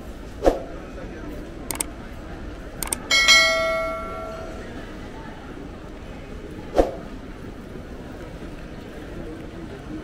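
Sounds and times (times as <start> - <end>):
bright bell chime: 3.1 - 4.7.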